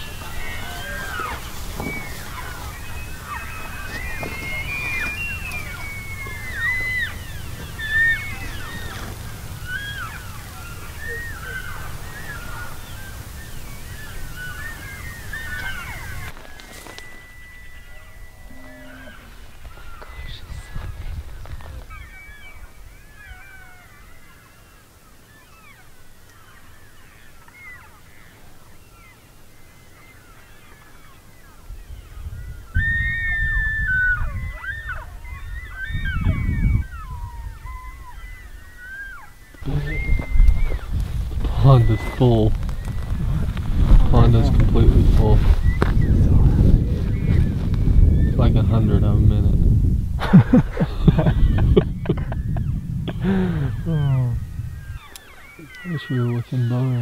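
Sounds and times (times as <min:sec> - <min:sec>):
low rumble: 0:00.0 - 0:16.4
elk whistled calls: 0:00.0 - 0:48.5, 0:52.1 - 0:57.0
elk herd mewing and chirping: 0:00.0 - 0:49.2, 0:50.3 - 0:57.0.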